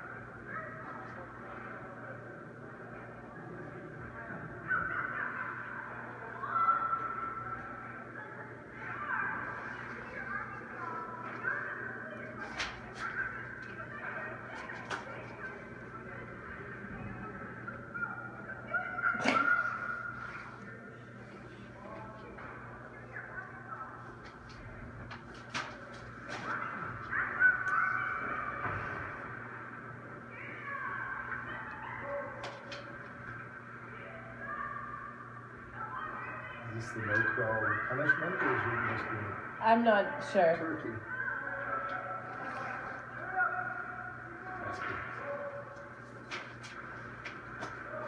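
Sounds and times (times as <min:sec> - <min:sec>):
distant voices calling out: 0:00.0 - 0:48.0.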